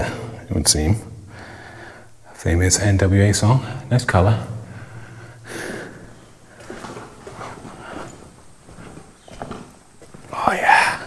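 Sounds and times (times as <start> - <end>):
person breathing: 1.2 - 2.3, 4.6 - 9.0.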